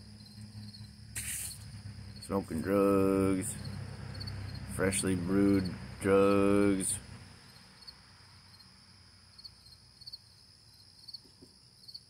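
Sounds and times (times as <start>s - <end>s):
low hum: 0.0s - 9.1s
insects chirping: 0.0s - 12.0s.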